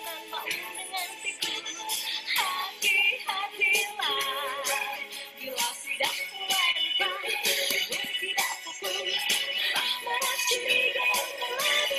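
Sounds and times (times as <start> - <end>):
person singing: 0.0 - 11.9.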